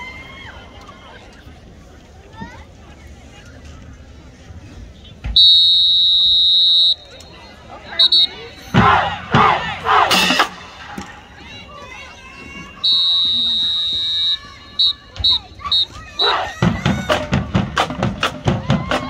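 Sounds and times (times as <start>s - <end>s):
whistle blasts and toots: 5.3s - 9.0s, 12.8s - 16.7s
people shouting in unison: 8.7s - 10.5s, 15.7s - 17.3s
drumline beat: 8.7s - 11.0s, 16.2s - 19.0s.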